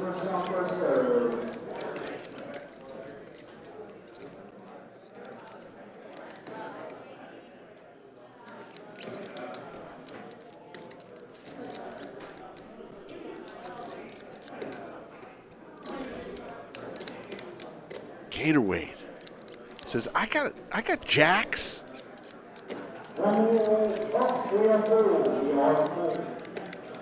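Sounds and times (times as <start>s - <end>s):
murmur of voices: 0.0s - 27.0s.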